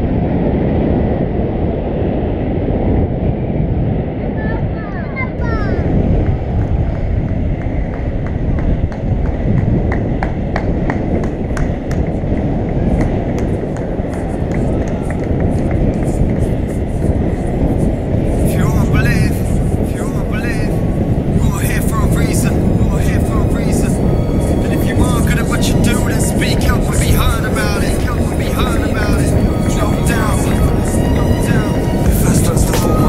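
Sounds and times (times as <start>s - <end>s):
wind on microphone: 0.0s - 33.0s
skate wheels rolling on asphalt: 5.4s - 23.2s, 23.8s - 33.0s.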